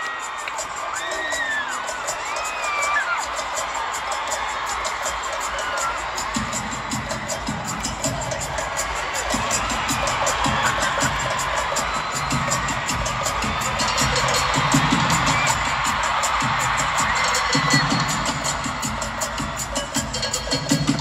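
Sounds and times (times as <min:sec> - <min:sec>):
crowd cheering: 0:00.0 - 0:21.0
pop band music over speakers: 0:00.0 - 0:21.0.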